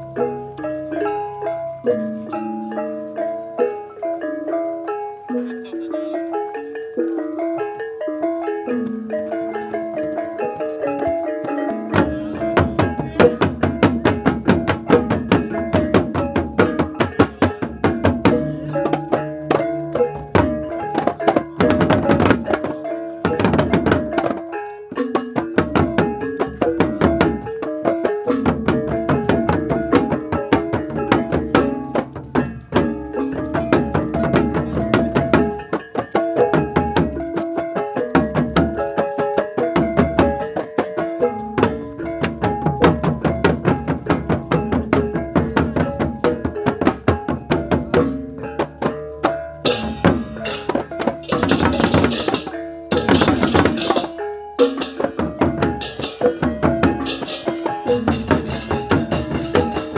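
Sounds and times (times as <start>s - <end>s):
drums and fast percussion: 0.0s - 59.9s
metallophone melody: 0.0s - 59.9s.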